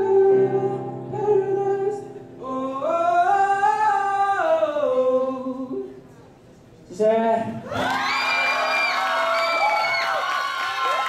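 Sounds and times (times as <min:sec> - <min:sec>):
audience cheering and screaming: 0:07.7 - 0:11.0.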